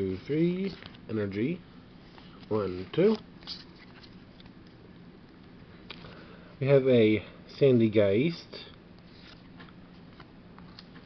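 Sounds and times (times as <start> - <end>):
cards sliding and flicking: 2.1 - 4.6, 9.0 - 11.0.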